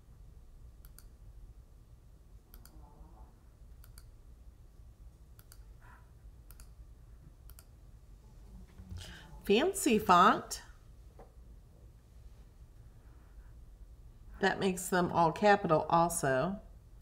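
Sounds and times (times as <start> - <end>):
computer mouse clicks: 0.8 - 1.2, 2.5 - 2.8, 3.8 - 4.2, 5.3 - 5.7, 6.4 - 6.8, 7.4 - 7.7.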